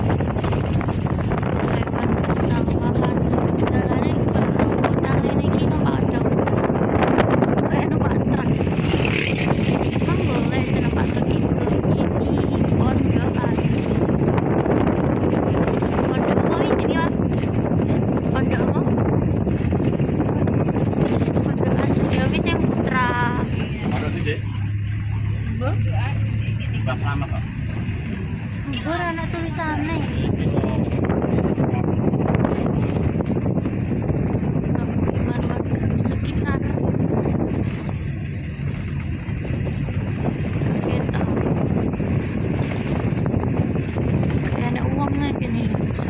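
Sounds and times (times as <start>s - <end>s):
car road and engine noise: 0.0s - 46.0s
wind on microphone: 0.0s - 46.0s.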